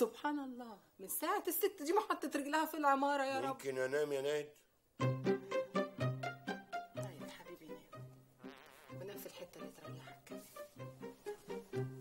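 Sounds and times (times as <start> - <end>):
soft background music: 5.0 - 12.0
insect-like buzz: 8.4 - 9.2.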